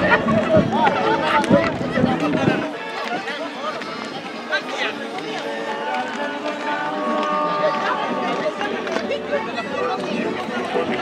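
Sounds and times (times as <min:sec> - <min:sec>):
voices calling and talking: 0:00.0 - 0:11.0.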